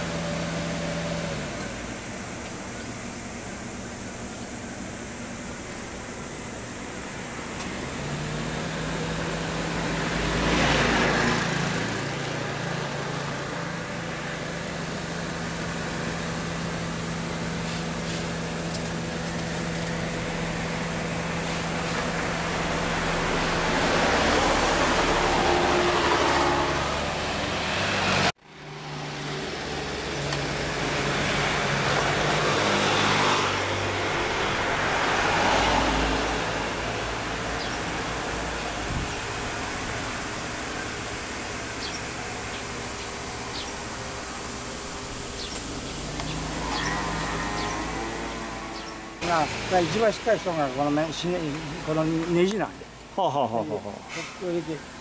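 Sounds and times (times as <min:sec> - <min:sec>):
low engine hum: 0:00.0 - 0:50.8
cars passing by: 0:00.0 - 0:55.0.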